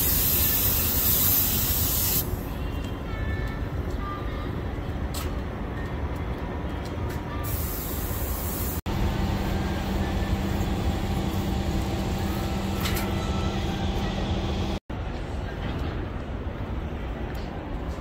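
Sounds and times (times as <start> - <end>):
spray hissing: 0.0 - 2.3, 7.5 - 12.6
steady hum: 8.8 - 14.8
diesel truck idling: 8.9 - 14.8.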